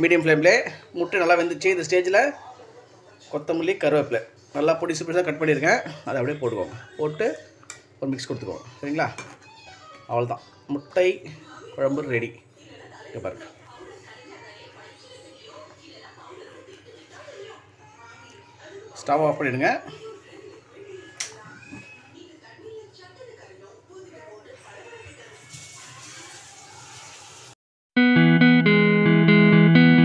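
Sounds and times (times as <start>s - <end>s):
faint background voices: 9.2s - 27.0s.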